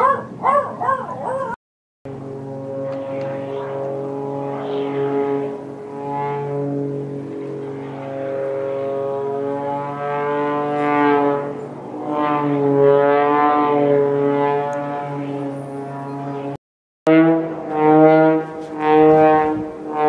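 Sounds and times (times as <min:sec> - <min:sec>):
propeller plane engine droning: 0:00.0 - 0:20.0.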